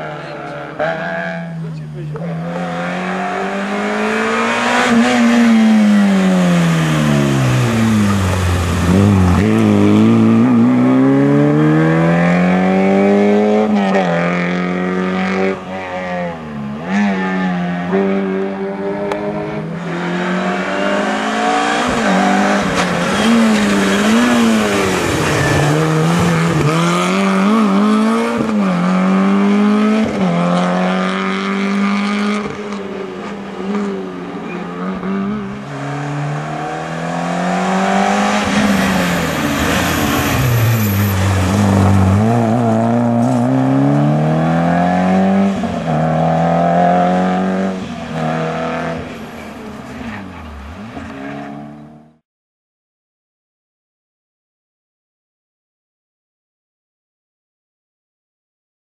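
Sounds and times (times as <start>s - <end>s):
rally car engines revving: 0.0s - 52.2s.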